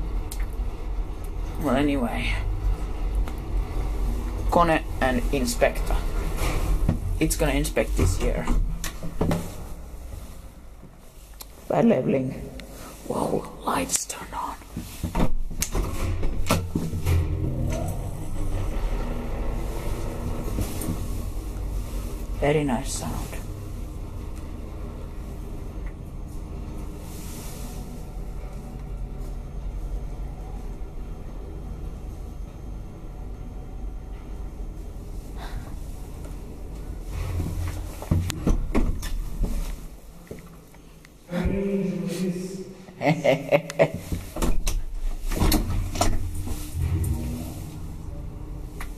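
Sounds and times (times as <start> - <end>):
elevator machinery hum: 0.0 - 48.9
elevator clunks and clicks: 15.1 - 21.7.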